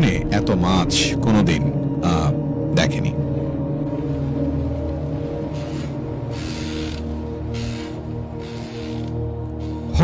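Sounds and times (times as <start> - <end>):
background music with low drones: 0.0 - 10.0.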